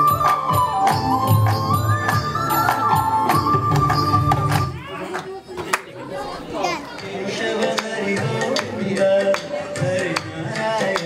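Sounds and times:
children's chatter in a hall: 2.5s - 11.0s
child's high voice: 6.5s - 7.0s.

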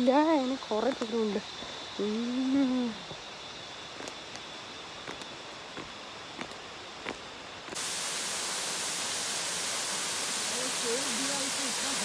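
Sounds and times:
waterfall pouring into pool: 7.8s - 12.0s.

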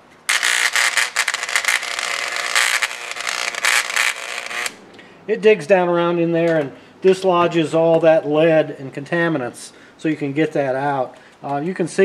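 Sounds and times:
electric engraver buzzing: 0.0s - 4.8s.

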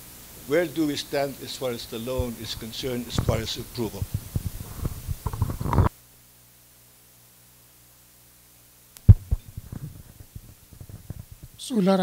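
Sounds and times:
faint steady hum: 0.0s - 12.0s
microphone handling thumps: 2.0s - 5.9s, 9.0s - 11.6s.

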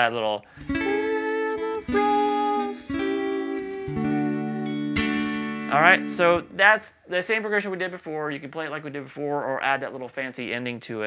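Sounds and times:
clean electric guitar chords: 0.6s - 6.6s.

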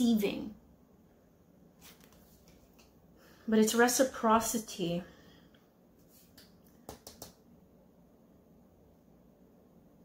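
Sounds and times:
cards clicking on table: 6.3s - 7.4s.

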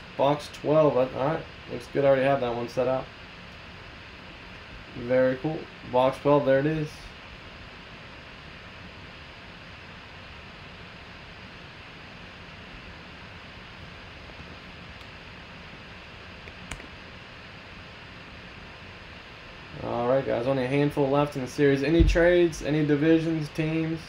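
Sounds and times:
room tone hiss: 0.0s - 24.0s.

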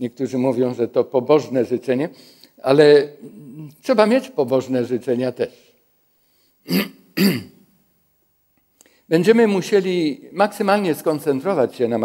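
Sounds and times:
man clearing his throat: 6.7s - 7.6s.

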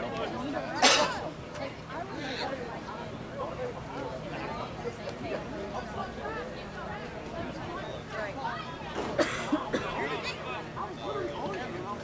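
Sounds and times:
distant voices chattering: 0.0s - 12.0s.

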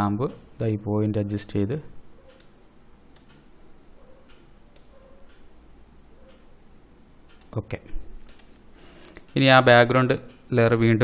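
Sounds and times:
low room noise: 0.0s - 11.0s
computer mouse clicks: 1.7s - 3.4s, 4.1s - 5.5s, 6.2s - 6.5s, 7.3s - 7.6s, 8.2s - 9.4s.

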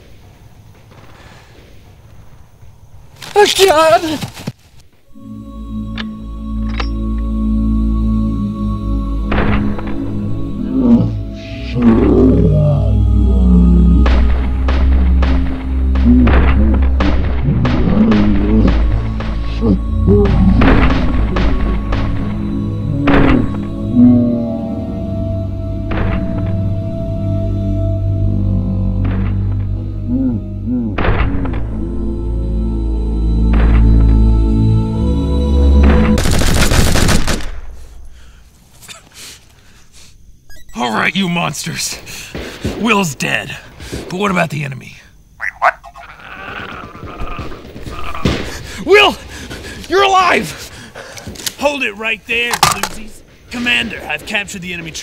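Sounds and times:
dramatic music: 5.1s - 37.2s
rapid gunfire: 36.2s - 37.6s.

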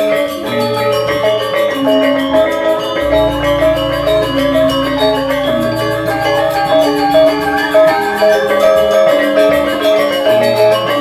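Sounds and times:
metallophones ringing: 0.0s - 11.0s
deep sustained tone: 0.4s - 9.8s.

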